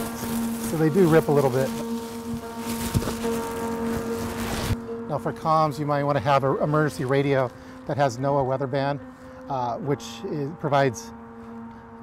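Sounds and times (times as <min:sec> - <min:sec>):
plastic bag crinkling: 0:00.0 - 0:04.8, 0:06.5 - 0:07.9
background music drone: 0:00.0 - 0:12.0.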